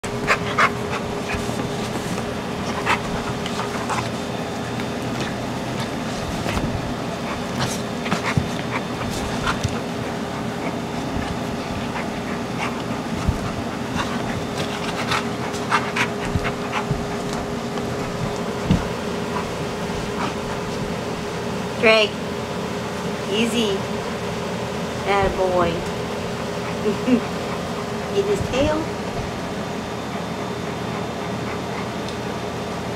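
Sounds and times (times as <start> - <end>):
dogs play-fighting: 0.0 - 32.9
steady background hum: 0.0 - 32.9.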